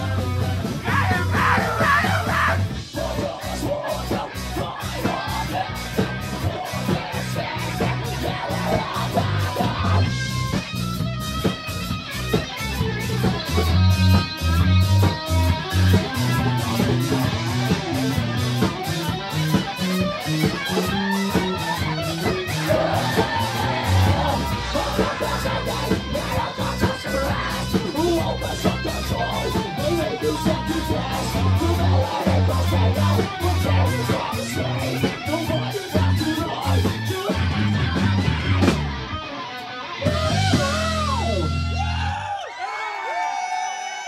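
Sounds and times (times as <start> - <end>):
rock band playing live: 0.0 - 42.6.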